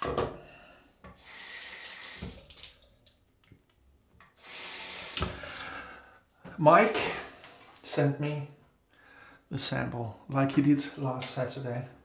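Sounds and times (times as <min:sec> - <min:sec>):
tap water running into sink: 0:01.2 - 0:03.6.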